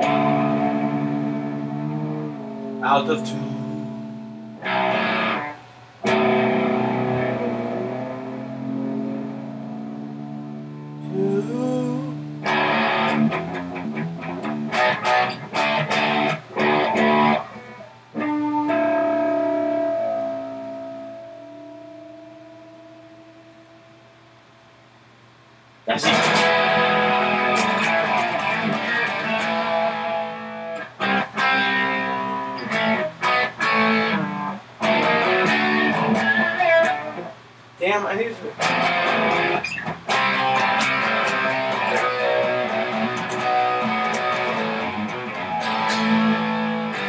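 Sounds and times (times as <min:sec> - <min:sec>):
electric guitar chord ringing: 0:00.0 - 0:24.8, 0:25.9 - 0:37.4, 0:38.2 - 0:47.0.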